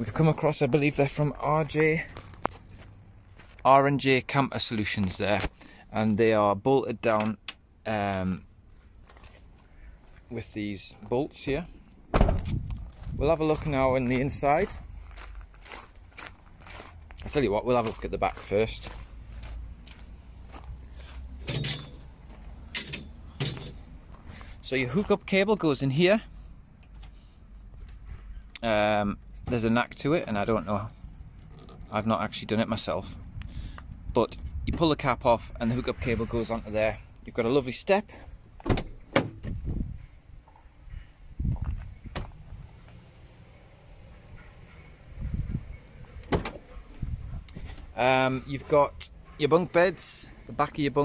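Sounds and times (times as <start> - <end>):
footsteps on gravel: 0.2 - 3.7, 12.4 - 22.7
low thuds: 12.1 - 13.7, 41.4 - 42.7.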